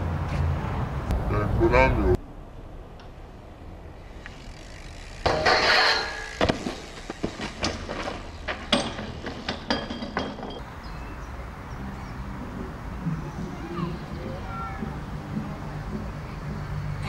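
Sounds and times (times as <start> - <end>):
harsh scraping of tyres: 4.0 - 9.7
bike clattering on pavement: 4.2 - 10.7.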